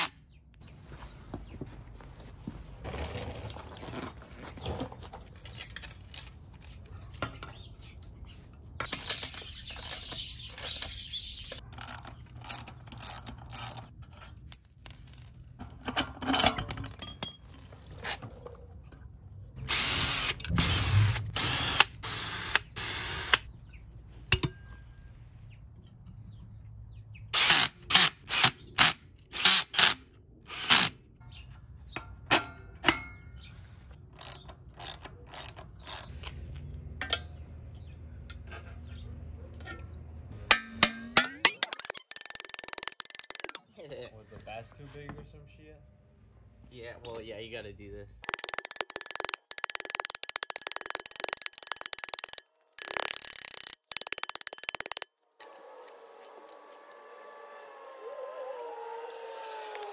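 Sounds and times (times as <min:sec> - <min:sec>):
cordless drill running: 0:19.7 - 0:23.4, 0:48.2 - 0:59.9
ratcheting wrench clicks: 0:41.4 - 0:43.6, 0:48.2 - 0:57.1.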